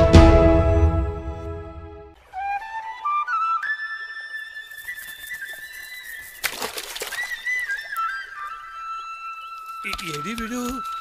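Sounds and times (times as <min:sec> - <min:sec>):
flute melody: 0:00.0 - 0:11.0.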